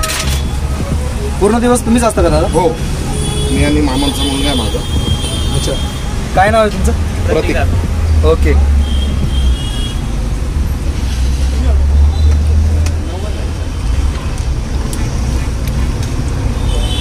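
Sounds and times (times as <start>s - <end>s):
low rumble of street traffic: 0.0s - 17.0s.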